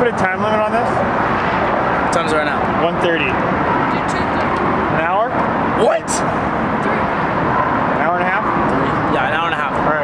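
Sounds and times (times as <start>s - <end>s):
traffic noise: 0.0s - 10.0s.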